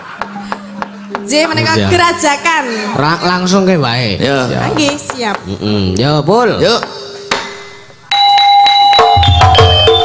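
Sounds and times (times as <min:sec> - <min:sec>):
drum: 0:00.0 - 0:02.3, 0:09.0 - 0:10.0
metallophone bell-like tone: 0:00.0 - 0:03.5, 0:08.1 - 0:10.0.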